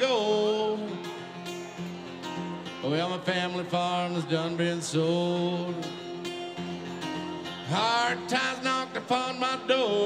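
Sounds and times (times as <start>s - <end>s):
man singing: 0.0s - 1.2s, 2.6s - 6.4s, 7.4s - 10.0s
strummed acoustic guitar: 0.0s - 10.0s.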